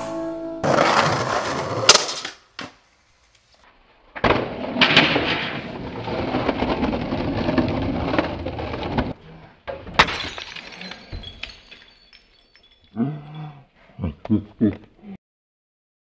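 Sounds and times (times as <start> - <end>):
skateboard wheels rolling on concrete: 0.6 - 9.2.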